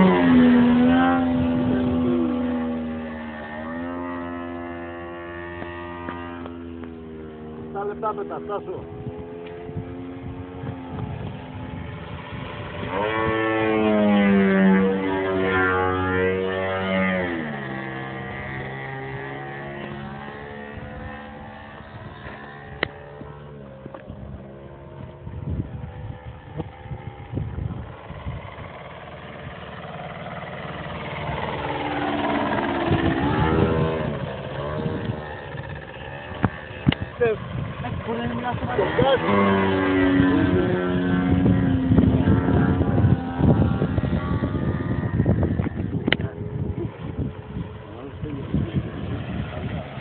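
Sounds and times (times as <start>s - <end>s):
model plane engine: 0.0s - 50.0s.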